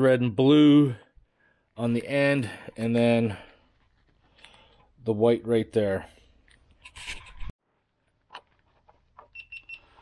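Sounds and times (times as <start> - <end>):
short high-pitched multimeter beeps: 9.3 - 10.0.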